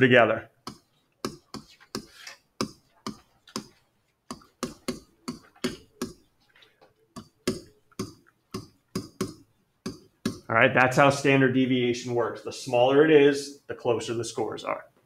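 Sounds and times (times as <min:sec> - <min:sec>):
stylus tapping on pen surface: 0:00.6 - 0:06.3, 0:07.1 - 0:10.5.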